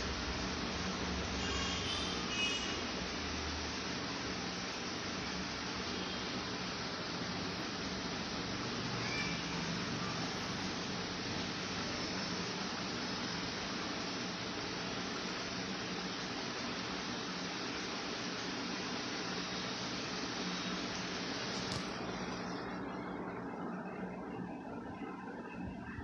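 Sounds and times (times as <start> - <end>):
steady background hiss: 0.0 - 26.0.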